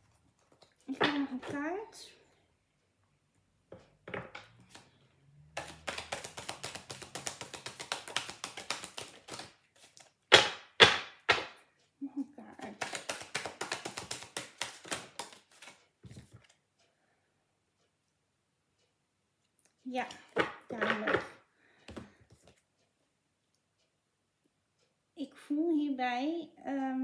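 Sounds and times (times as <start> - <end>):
cards shuffling clicks: 5.6 - 11.6, 12.6 - 16.6
sharp card snaps: 12.7 - 15.8.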